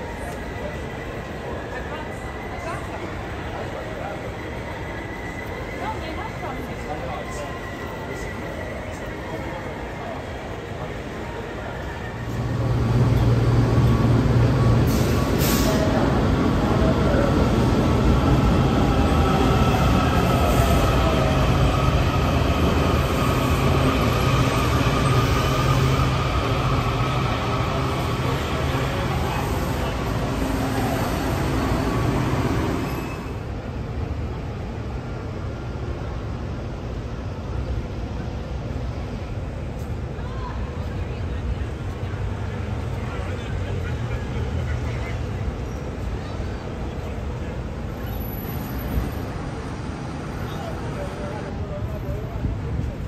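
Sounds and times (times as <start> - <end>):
subway train rumbling: 0.0 - 53.0.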